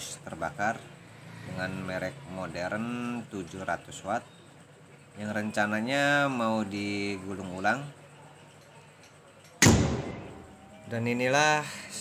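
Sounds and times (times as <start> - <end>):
loud hit: 9.6 - 10.6.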